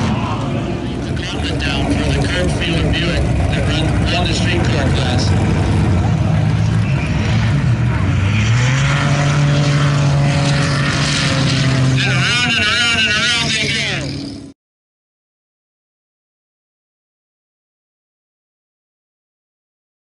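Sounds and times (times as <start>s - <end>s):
another car racing: 0.0s - 14.5s
car engine revving hard: 0.0s - 14.5s.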